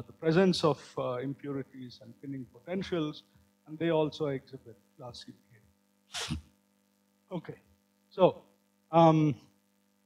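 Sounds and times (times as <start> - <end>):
man speaking: 0.0 - 5.6, 7.3 - 7.6
sharp breath: 6.1 - 6.4.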